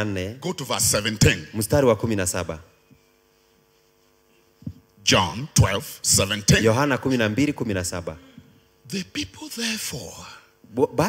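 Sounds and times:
faint electrical hum: 0.0 - 11.0
microphone sound: 3.8 - 9.8.

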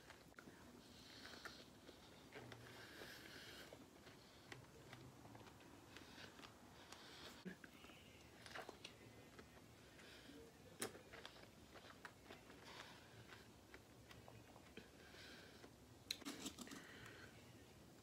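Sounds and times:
person chewing fruit: 0.0 - 17.3.

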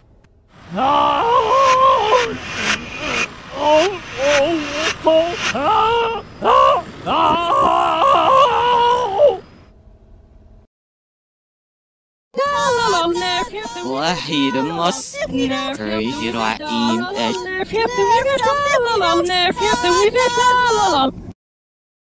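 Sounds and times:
high-pitched cartoon voices: 0.7 - 9.2, 12.4 - 21.0.

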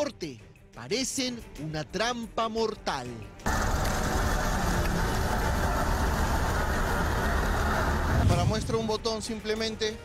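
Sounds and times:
street traffic noise: 3.4 - 8.5
minibus engines running: 3.5 - 8.3.

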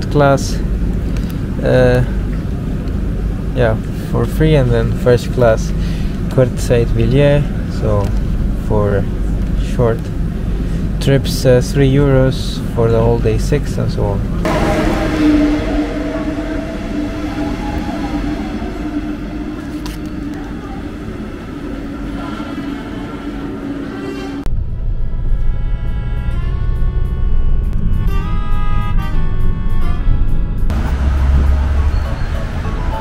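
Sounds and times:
passenger train rumbling past: 0.0 - 25.6, 29.0 - 33.0.

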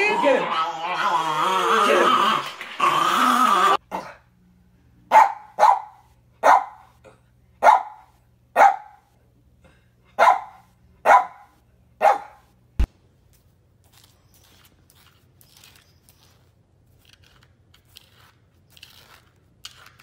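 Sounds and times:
dog growling and barking: 0.0 - 4.3
puppy barking: 5.1 - 7.0, 7.6 - 9.1, 10.2 - 12.5.

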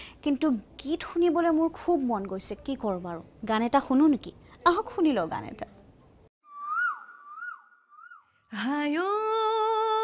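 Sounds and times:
high whistle-like tone: 6.4 - 8.4.

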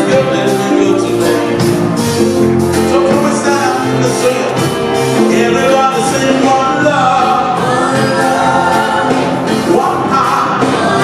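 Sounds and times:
man singing into a microphone: 0.0 - 1.8, 2.8 - 11.0
choir backing voices: 0.0 - 11.0.

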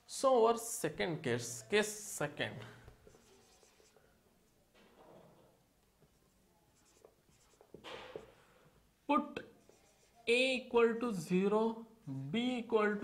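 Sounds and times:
marker pen writing on whiteboard: 2.9 - 4.2, 5.8 - 8.4, 9.3 - 10.5.

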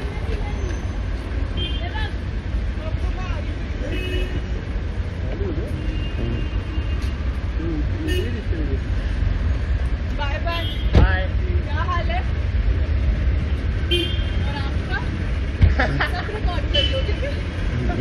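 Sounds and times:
low traffic rumble: 0.0 - 18.0
scattered voices: 17.6 - 18.0.

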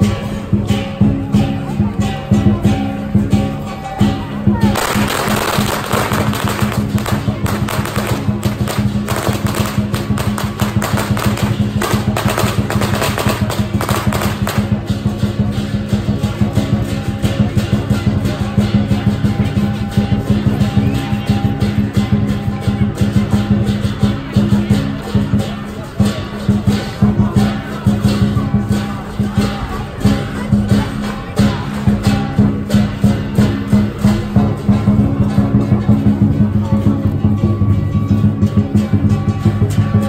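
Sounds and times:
drum cymbals and gong rhythm: 0.0 - 40.0
firecrackers crackling: 0.0 - 40.0.

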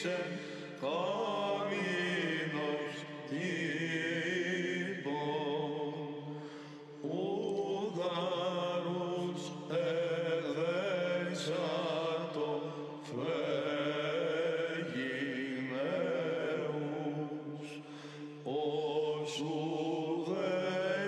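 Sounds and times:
choir chanting a hymn: 0.0 - 21.0.

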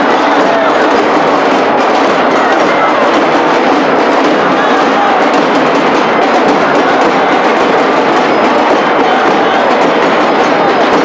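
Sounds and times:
dense crowd noise: 0.0 - 11.0
hand drums beating fast: 0.0 - 11.0.

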